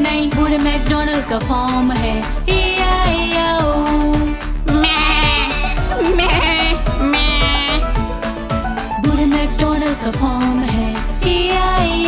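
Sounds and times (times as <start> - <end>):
children's song music with beat: 0.0 - 12.0
cartoon sheep bleating: 2.5 - 3.6, 4.7 - 8.1.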